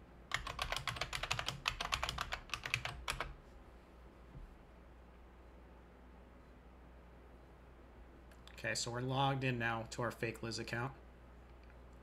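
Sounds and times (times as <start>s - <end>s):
typing on computer keyboard: 0.3s - 3.4s.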